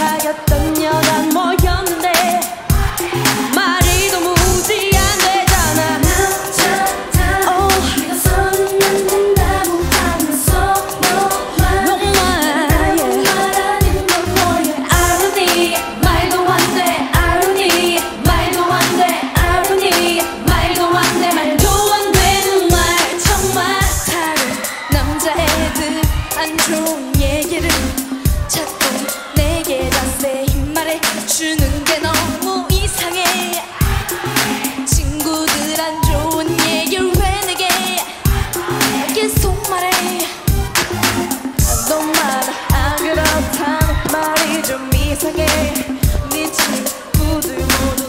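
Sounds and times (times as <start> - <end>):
driving dance beat: 0.0 - 48.0
women singing pop song: 0.0 - 48.0.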